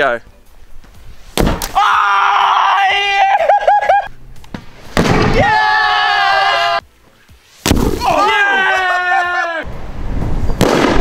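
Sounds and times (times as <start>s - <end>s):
men yelling: 1.7s - 4.1s, 5.3s - 6.8s, 8.0s - 9.7s.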